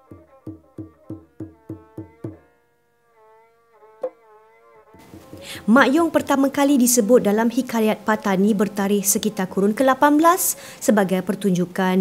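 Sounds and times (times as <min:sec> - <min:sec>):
drum stroke: 0:05.0 - 0:05.6.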